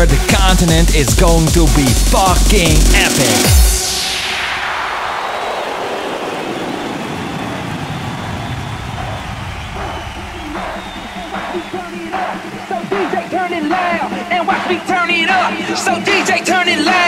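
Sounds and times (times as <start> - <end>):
noise sweep falling: 2.7 - 13.0.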